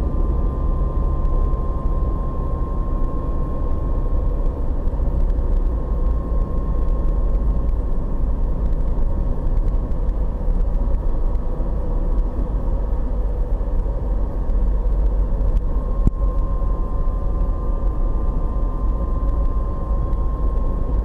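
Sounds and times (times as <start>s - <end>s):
car road and engine rumble: 0.0s - 21.0s
faint steady hum: 0.0s - 21.0s.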